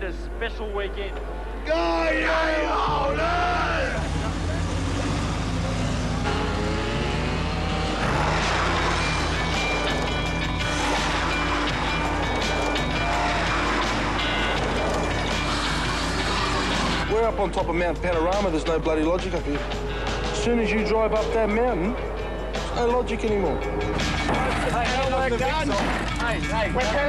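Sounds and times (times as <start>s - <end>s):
music: 1.2s - 27.0s
people shouting: 1.6s - 4.2s, 11.0s - 15.3s
car engine: 3.2s - 17.7s, 18.4s - 27.0s.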